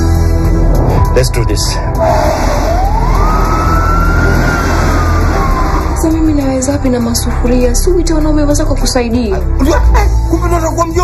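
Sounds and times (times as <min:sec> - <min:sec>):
emergency vehicle siren wailing: 0:02.0 - 0:06.4
deep low rumble: 0:02.0 - 0:07.4.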